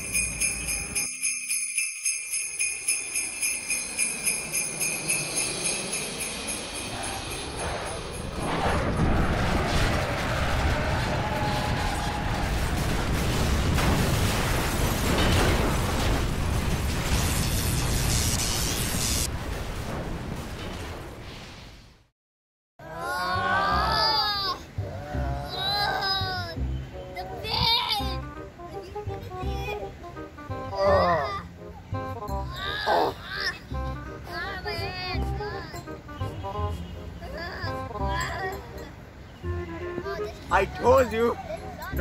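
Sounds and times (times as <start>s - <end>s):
sleigh bells jingling: 0.0s - 8.6s
loud rushing rumble: 5.8s - 18.4s.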